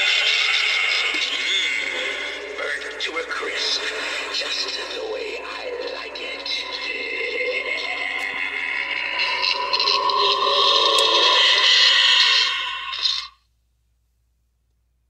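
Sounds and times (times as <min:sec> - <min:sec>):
harsh noisy sound effect from speaker: 0:00.0 - 0:13.4.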